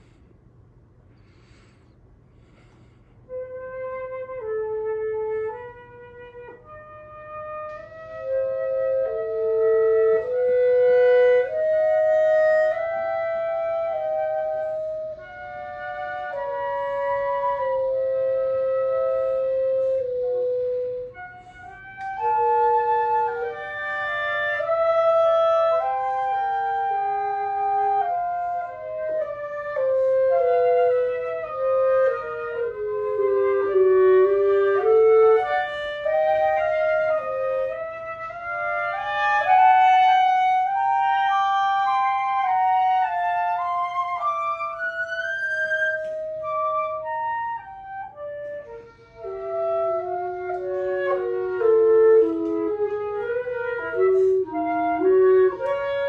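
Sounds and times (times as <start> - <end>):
clarinet playing: 2.4 - 56.0
flute playing: 2.4 - 56.0.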